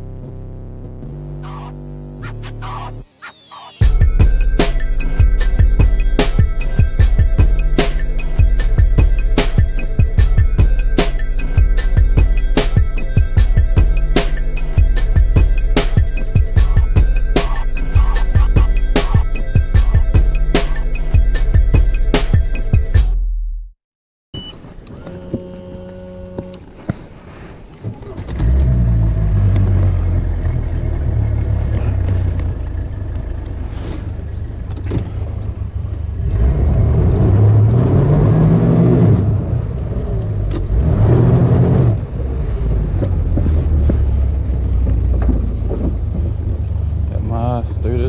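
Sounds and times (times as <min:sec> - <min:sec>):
brief beep: 0:24.3 - 0:26.6
outboard motor idling: 0:29.9 - 0:36.2.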